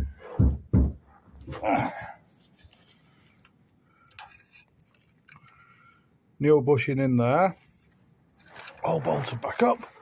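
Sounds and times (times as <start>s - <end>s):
light handling clicks and clinks: 2.6s - 5.7s.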